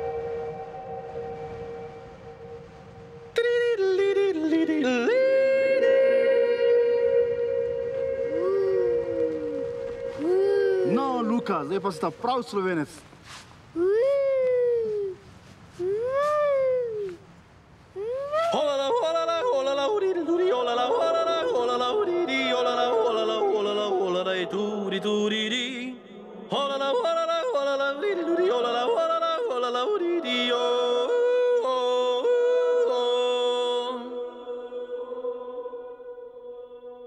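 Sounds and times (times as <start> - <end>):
person yodeling: 4.8 - 12.2, 13.8 - 15.2, 15.8 - 17.2, 18.0 - 25.6
person yodel-style calling: 6.8 - 12.2, 15.8 - 17.2.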